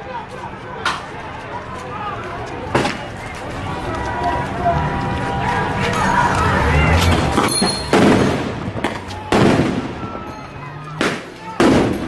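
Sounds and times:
distant voices shouting: 0.0s - 12.0s
outdoor street noise: 0.0s - 12.0s.

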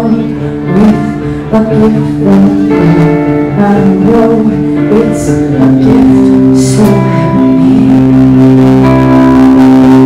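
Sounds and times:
live rock band playing: 0.0s - 10.0s
ringing guitar chords: 0.0s - 10.0s.

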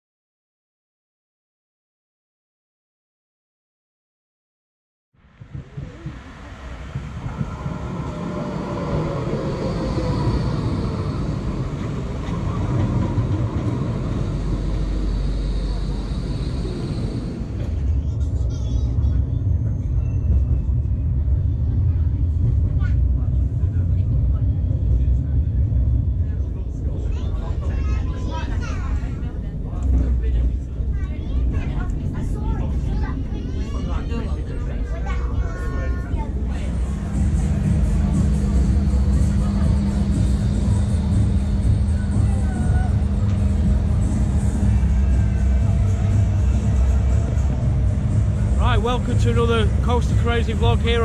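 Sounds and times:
tram rumble: 5.2s - 51.0s
tram whine: 5.2s - 51.0s
passengers talking: 5.3s - 51.0s.

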